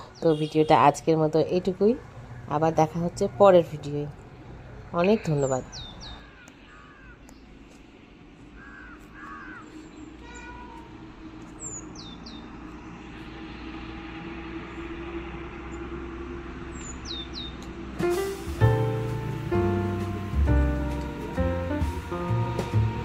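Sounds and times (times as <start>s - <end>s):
birds whistling and chirping: 5.1s - 7.4s, 16.7s - 17.6s.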